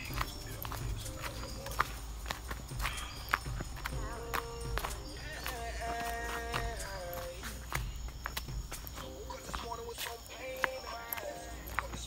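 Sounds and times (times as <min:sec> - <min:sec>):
footsteps on dirt trail: 0:00.0 - 0:12.0
quiet voices: 0:00.0 - 0:12.0.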